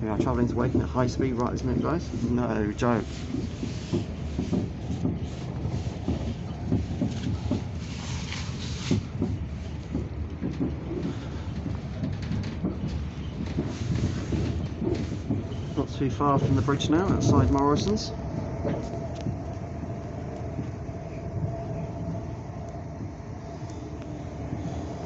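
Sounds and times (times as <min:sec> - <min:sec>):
train rumble and hiss: 0:00.0 - 0:25.0
wheels clicking on track: 0:00.0 - 0:25.0.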